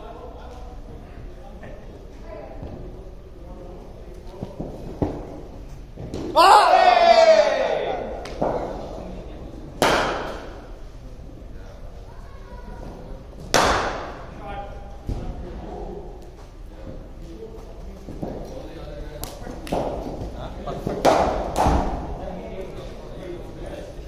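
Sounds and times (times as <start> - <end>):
loud shout: 6.3 - 8.2
cricket ball striking bat: 13.5 - 14.2.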